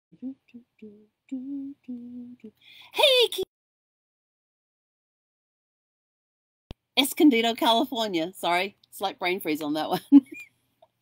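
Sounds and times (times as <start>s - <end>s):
woman humming short notes: 0.2s - 2.5s.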